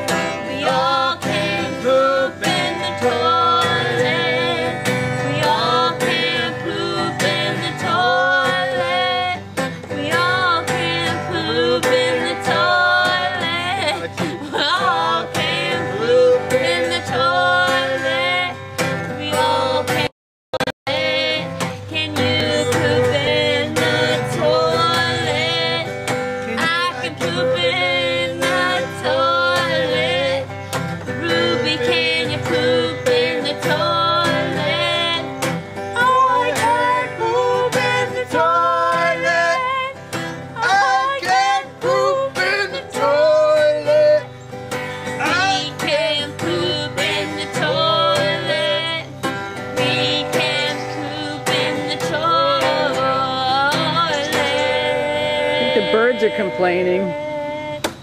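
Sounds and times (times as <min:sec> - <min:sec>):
strummed acoustic guitar: 0:00.0 - 0:58.0
woman and man singing: 0:00.0 - 0:58.0.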